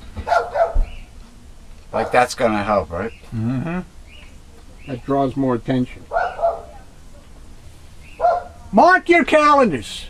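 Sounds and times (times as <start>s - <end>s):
dog barking outside: 0.1s - 1.2s, 1.9s - 2.5s, 6.0s - 7.4s, 8.0s - 8.8s.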